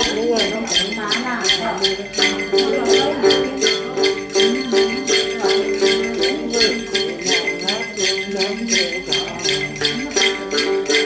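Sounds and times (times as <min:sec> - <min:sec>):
jingle bells shaken: 0:00.0 - 0:11.0
plucked two-string lute melody: 0:00.0 - 0:11.0.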